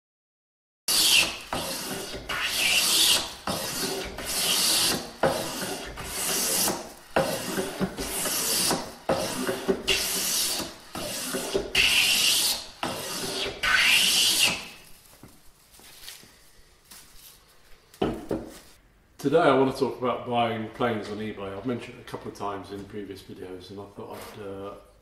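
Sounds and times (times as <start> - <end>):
plane shaving wood: 0.9 - 14.8.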